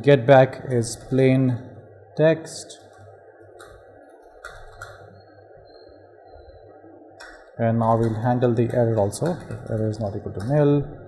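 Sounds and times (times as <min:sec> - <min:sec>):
low background hum and hiss: 0:00.0 - 0:11.0
thin high-pitched whine: 0:00.0 - 0:11.0.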